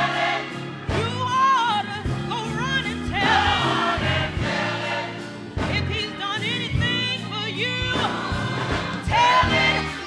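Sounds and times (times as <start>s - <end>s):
gospel choir singing: 0.0s - 1.4s, 2.8s - 10.0s
band accompaniment: 0.0s - 10.0s.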